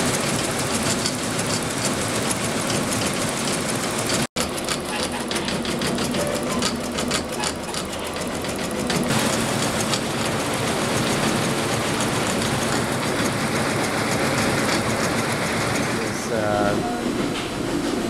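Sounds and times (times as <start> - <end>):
embroidery machine stitching: 0.0 - 16.8.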